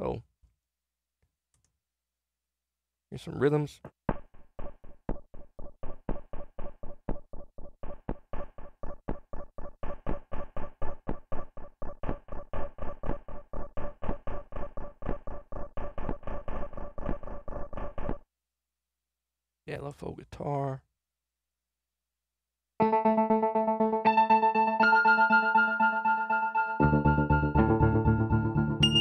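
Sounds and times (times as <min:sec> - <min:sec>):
chiptune synthesizer notes: 0:04.6 - 0:18.2
glitchy synth layer: 0:04.6 - 0:18.2.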